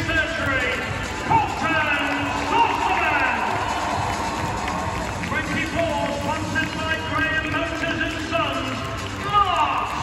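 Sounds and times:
announcer voice over loudspeakers: 0:00.0 - 0:03.6, 0:05.2 - 0:10.0
arena crowd din: 0:00.0 - 0:10.0
music over loudspeakers: 0:00.0 - 0:10.0.

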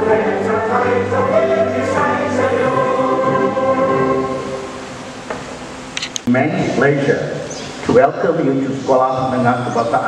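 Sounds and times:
choir singing long held notes: 0:00.0 - 0:05.3.

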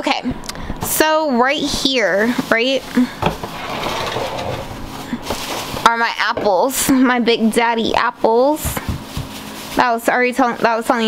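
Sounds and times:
person's voice: 0:00.0 - 0:03.2, 0:05.8 - 0:08.8, 0:09.8 - 0:11.0
plastic bag rustling: 0:01.6 - 0:06.8, 0:08.2 - 0:11.0.

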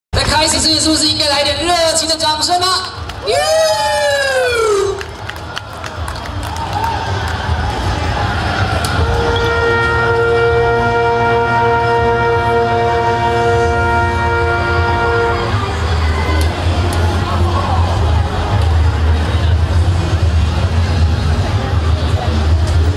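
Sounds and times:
applause and crowd noise: 0:00.2 - 0:10.8, 0:14.4 - 0:22.9
brass chord sustained: 0:09.0 - 0:17.5.

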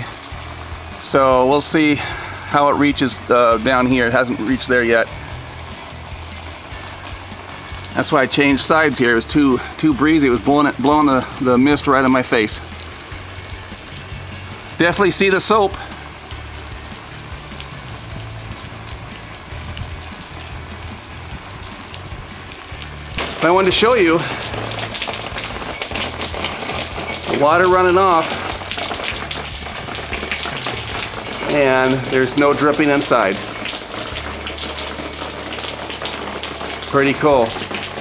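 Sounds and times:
water spray hissing on glass panels: 0:00.0 - 0:38.0.

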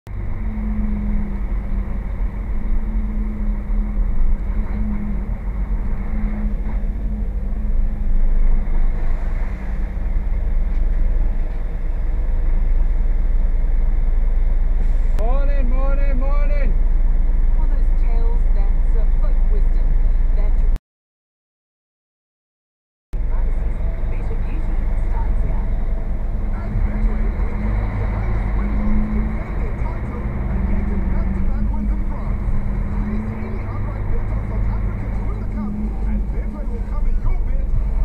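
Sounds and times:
truck engine drone: 0:00.0 - 0:20.8, 0:23.2 - 0:38.0.

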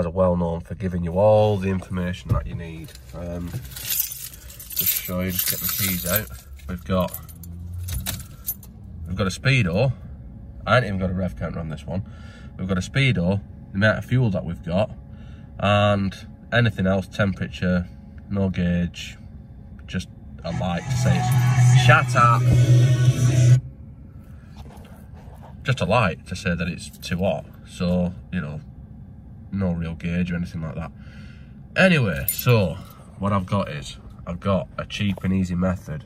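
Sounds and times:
car keys jangling: 0:02.8 - 0:08.7, 0:32.1 - 0:32.9
radio music with heavy bass: 0:20.4 - 0:23.6.

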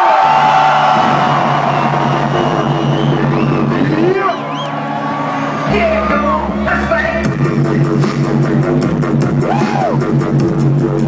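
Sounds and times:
crowd noise: 0:00.0 - 0:10.2
loud low bass drone: 0:01.0 - 0:04.2, 0:04.9 - 0:11.0.

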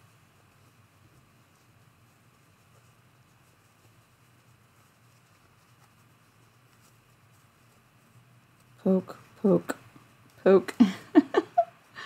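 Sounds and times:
cotton fabric rustling: 0:00.0 - 0:12.0
steady low hum: 0:00.0 - 0:12.0.

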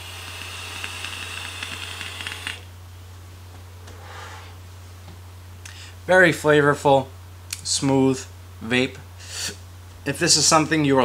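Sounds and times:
air hissing through vape: 0:00.0 - 0:02.6
e-liquid crackling on hot coils: 0:00.0 - 0:02.7.

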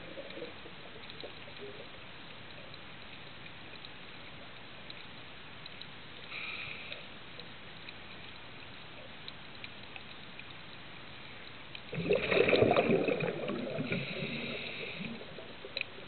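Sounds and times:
faint clicks: 0:00.0 - 0:16.0
underwater hiss: 0:06.2 - 0:07.2, 0:11.9 - 0:16.0.

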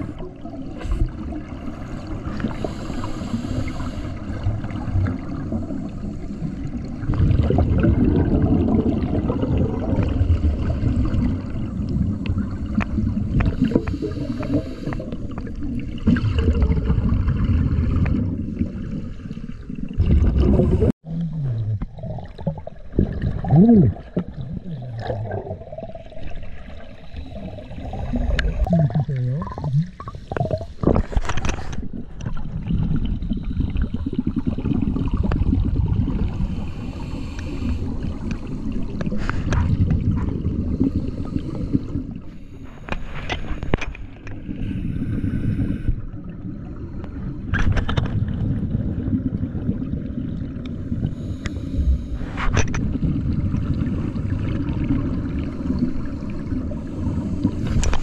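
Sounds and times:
underwater bubbles gurgling: 0:00.0 - 0:58.0.

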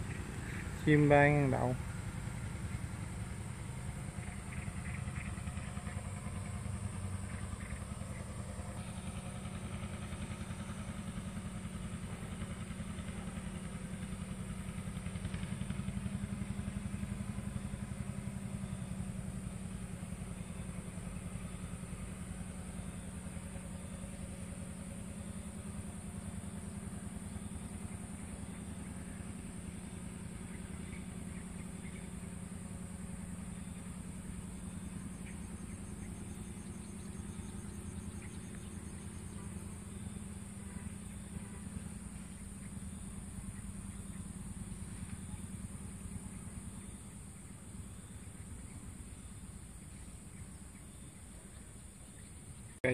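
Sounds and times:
small engine running at low revs: 0:00.0 - 0:52.9.

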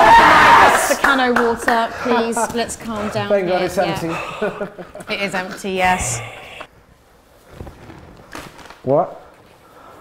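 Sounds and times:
thuds and rustles on leather sofa: 0:07.4 - 0:08.2.

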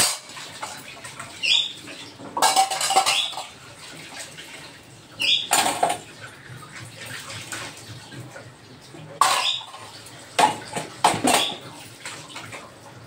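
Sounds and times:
steel utensils clattering: 0:00.0 - 0:00.5, 0:02.3 - 0:03.6, 0:05.4 - 0:06.1, 0:09.2 - 0:11.7
water running in a sink: 0:00.0 - 0:13.0.

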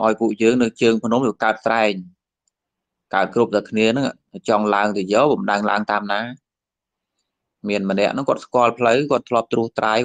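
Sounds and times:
man preaching: 0:00.0 - 0:02.1, 0:03.1 - 0:06.4, 0:07.6 - 0:10.0.

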